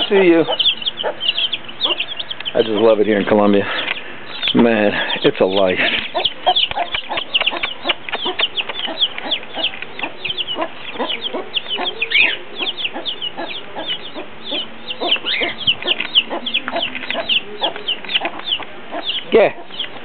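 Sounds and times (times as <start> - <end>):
chicks peeping: 0.0 - 20.0
hen clucking: 0.0 - 20.0.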